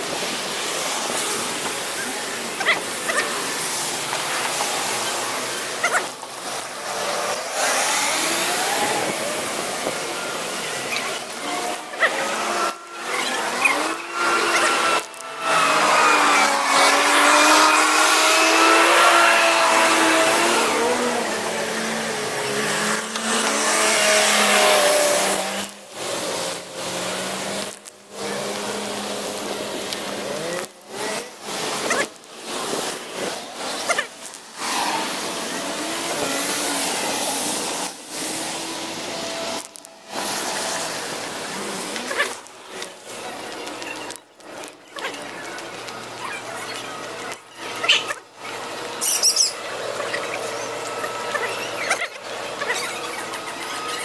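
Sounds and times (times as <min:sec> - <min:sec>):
passing traffic rush: 0:00.0 - 0:54.0
vehicle engine: 0:00.0 - 0:54.0.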